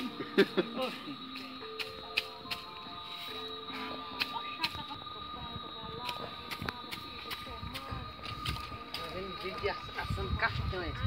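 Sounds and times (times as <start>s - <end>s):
broom sweeping ground: 0.0s - 10.8s
faint voices: 3.6s - 11.0s.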